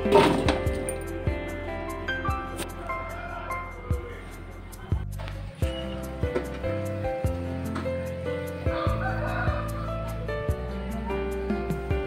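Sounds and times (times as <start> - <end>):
instrumental music: 0.0 - 12.0.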